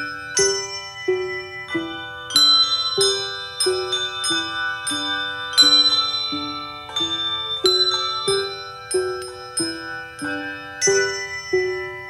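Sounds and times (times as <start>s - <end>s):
handbell choir ringing chords: 0.0s - 12.0s.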